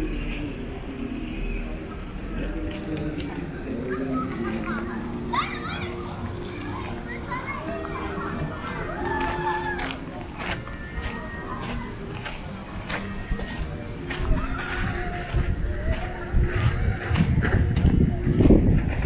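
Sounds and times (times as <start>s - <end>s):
faint music: 0.0s - 19.0s
passers-by talking: 0.0s - 19.0s
children playing and calling out: 3.4s - 19.0s.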